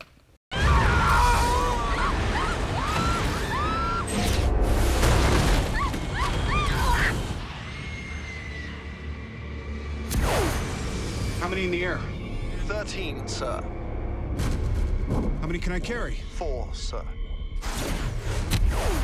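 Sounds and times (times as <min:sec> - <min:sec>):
people screaming: 0:00.5 - 0:04.5, 0:05.6 - 0:09.4
film music: 0:01.0 - 0:19.0.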